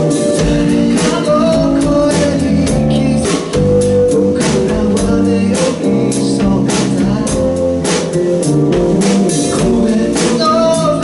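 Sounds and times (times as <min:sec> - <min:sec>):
drum kit beat: 0:00.0 - 0:11.0
live band playing a song: 0:00.0 - 0:11.0
man singing: 0:00.0 - 0:11.0.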